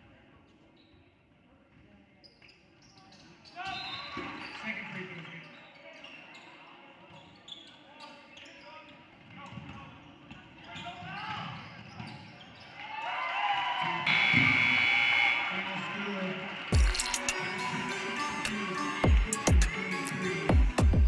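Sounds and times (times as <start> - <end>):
spectators cheering: 12.8 - 21.0.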